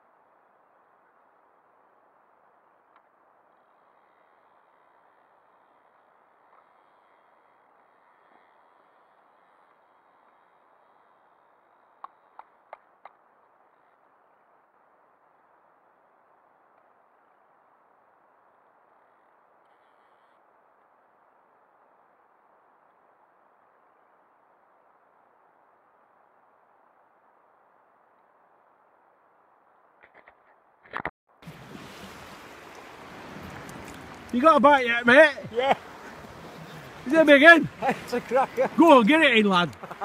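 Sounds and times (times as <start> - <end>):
faint steady hiss: 0.0 - 30.6, 31.4 - 40.0.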